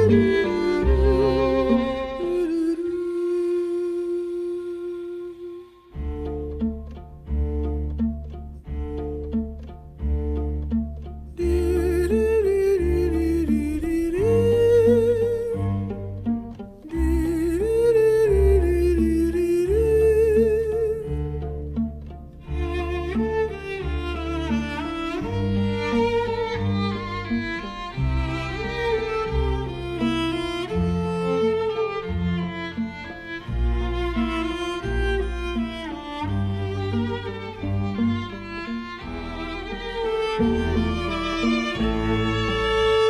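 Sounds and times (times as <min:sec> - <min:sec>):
string music: 0:00.0 - 0:43.0.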